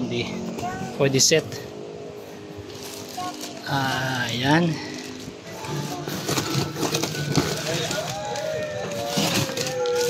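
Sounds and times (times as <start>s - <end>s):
plastic packaging crinkling: 6.0s - 10.0s.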